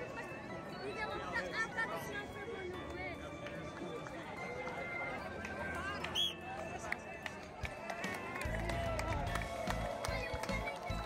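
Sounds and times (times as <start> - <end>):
runners' footsteps on cobblestones: 0.0 - 11.0
spectators chattering: 0.0 - 11.0.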